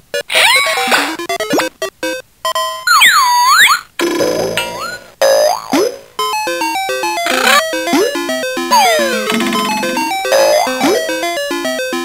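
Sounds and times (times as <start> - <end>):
electronic bleeps with pitch glides: 7.1 - 11.7.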